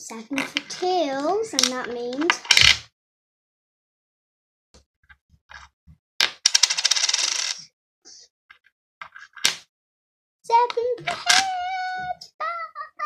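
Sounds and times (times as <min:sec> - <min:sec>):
coin spinning on hard surface: 0:06.2 - 0:07.7.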